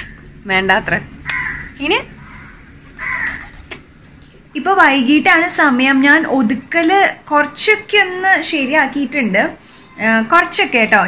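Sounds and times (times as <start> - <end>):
crow cawing: 1.2 - 3.7.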